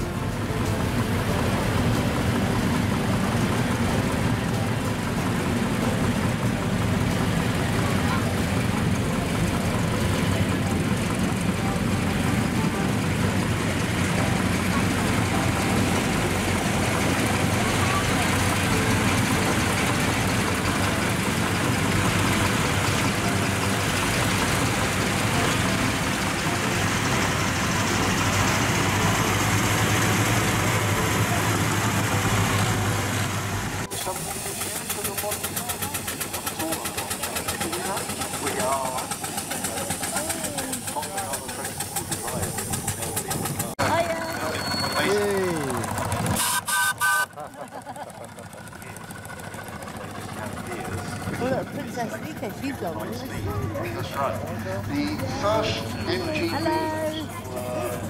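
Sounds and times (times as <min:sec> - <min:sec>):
people's voices: 0:00.0 - 0:46.4, 0:47.2 - 0:58.0
tractor engines idling: 0:00.0 - 0:58.0.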